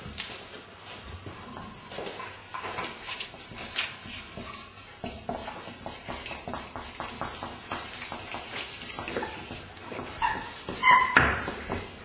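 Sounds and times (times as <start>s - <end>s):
marker pens scribbling on paper: 1.4s - 12.0s
felt tip squeaks: 10.1s - 11.7s.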